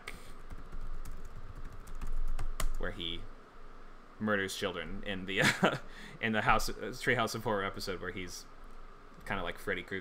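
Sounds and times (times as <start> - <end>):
typing on computer keyboard: 0.5 - 2.8.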